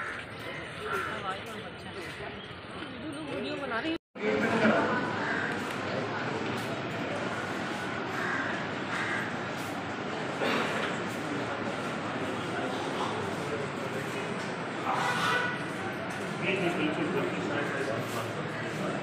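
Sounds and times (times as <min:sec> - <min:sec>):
crowd of men talking: 0:00.0 - 0:19.0.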